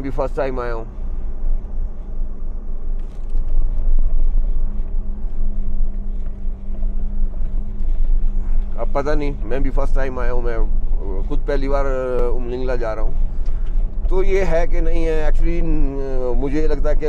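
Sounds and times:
light rattles: 0:00.0 - 0:17.0
low engine hum: 0:00.0 - 0:17.0
road rumble: 0:00.0 - 0:17.0.

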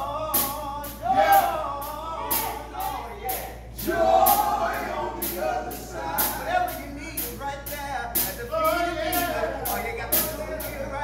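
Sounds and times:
male quartet singing in harmony: 0:00.0 - 0:07.5, 0:08.2 - 0:11.0.

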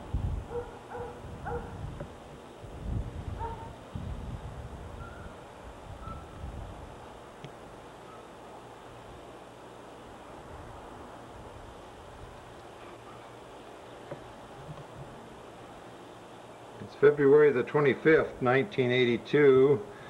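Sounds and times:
low rumbles on microphone: 0:00.0 - 0:07.0
dog barking faintly: 0:00.5 - 0:01.8, 0:03.4 - 0:03.8, 0:12.8 - 0:13.4.

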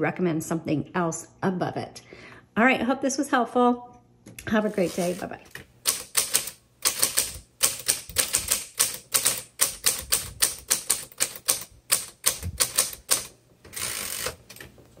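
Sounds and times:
typewriter carriage rasp: 0:04.7 - 0:05.3, 0:05.9 - 0:14.6
typewriter keys striking: 0:05.9 - 0:14.6.

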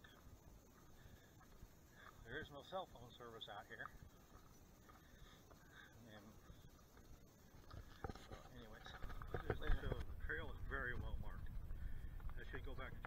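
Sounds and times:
man speaking indistinctly: 0:02.2 - 0:04.0
low microphone rumble: 0:08.8 - 0:13.0.

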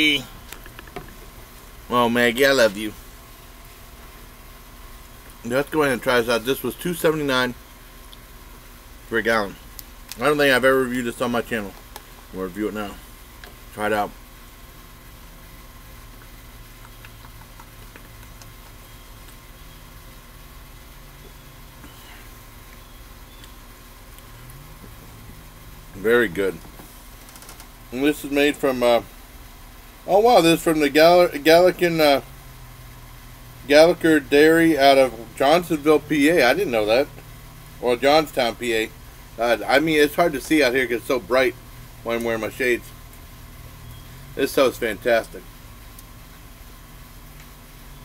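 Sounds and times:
low hum: 0:00.0 - 0:30.8
background hiss: 0:00.0 - 0:48.0.

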